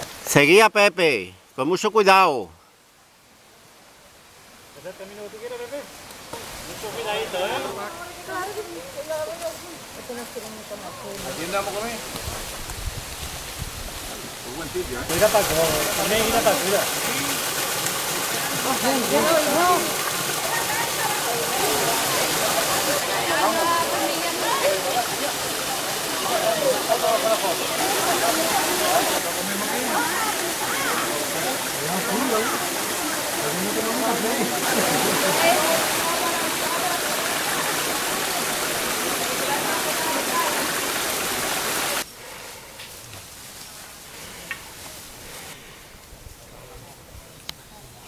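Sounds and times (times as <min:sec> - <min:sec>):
waterfall and stream rushing: 0:00.0 - 0:42.4
people's voices: 0:14.5 - 0:42.0.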